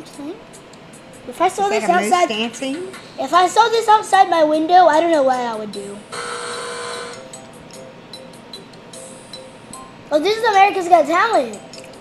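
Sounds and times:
held electronic tones: 6.1s - 7.3s.

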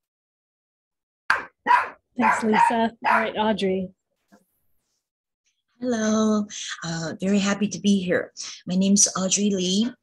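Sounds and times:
dog barking: 1.3s - 3.4s.

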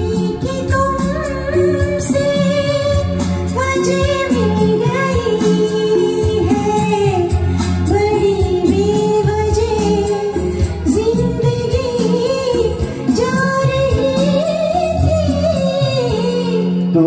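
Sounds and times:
woman singing: 0.0s - 16.9s
karaoke backing track: 0.0s - 17.0s.

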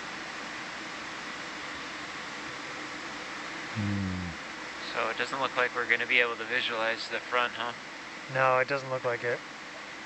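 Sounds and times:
steady hiss: 0.0s - 10.0s
faint hum: 0.8s - 10.0s
short low-pitched hum: 3.7s - 4.4s.

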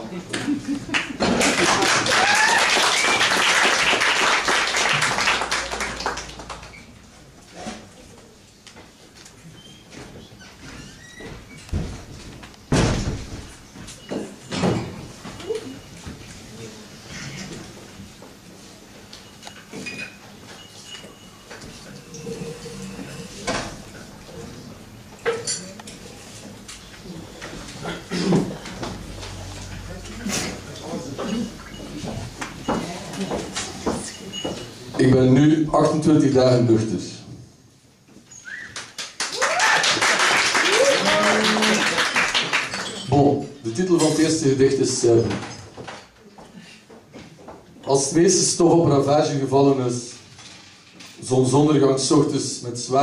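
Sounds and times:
audience clapping: 0.8s - 6.9s, 38.6s - 43.1s
audience whooping: 1.4s - 6.8s, 38.5s - 42.6s.

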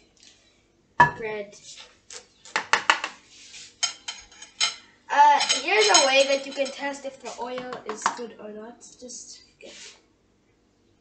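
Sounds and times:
utensil clinking against a dish: 3.8s - 8.2s.

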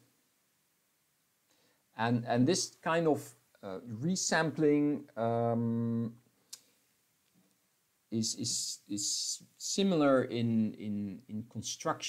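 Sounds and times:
speaker saying um: 4.9s - 6.1s.

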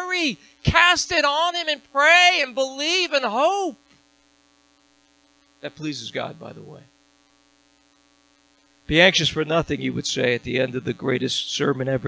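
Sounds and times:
man speaking: 0.0s - 3.8s, 5.6s - 6.9s, 8.9s - 12.0s
faint electrical hum: 0.0s - 12.0s.

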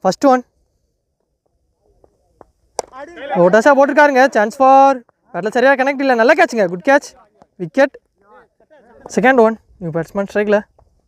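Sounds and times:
cricket bat striking ball: 2.0s - 3.2s.

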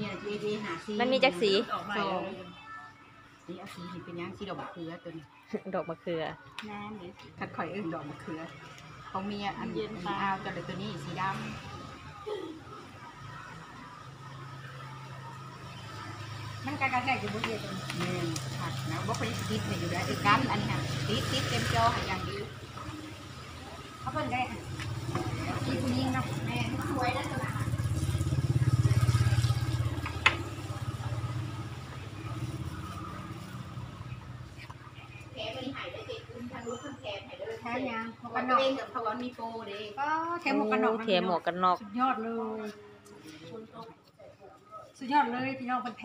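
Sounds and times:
engine running: 16.0s - 35.4s.

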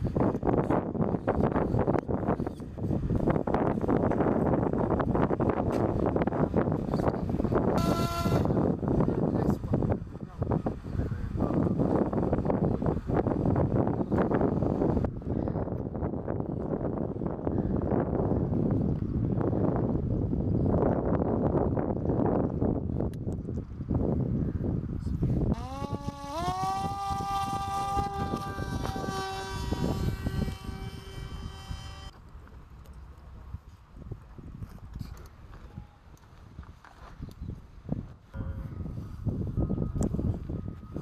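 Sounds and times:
drone motor and propeller buzzing: 0.0s - 20.7s, 25.0s - 33.7s, 37.2s - 41.0s
rough even noise: 25.5s - 32.2s.

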